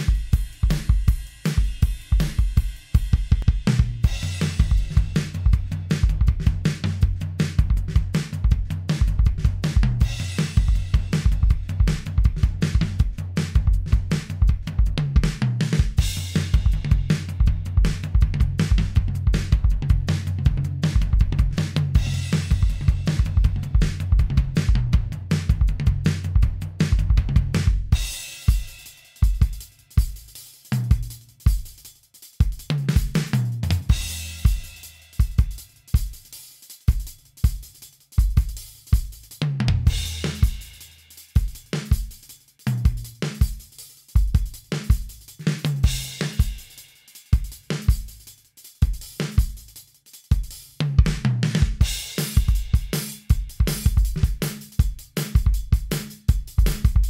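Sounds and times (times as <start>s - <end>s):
drum beat: 0.0s - 57.0s.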